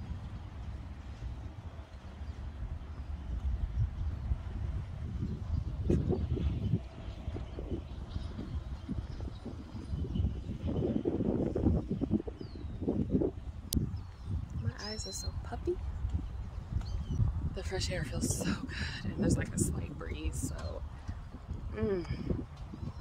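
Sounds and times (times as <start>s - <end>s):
wind rumbling on microphone: 0.0s - 23.0s.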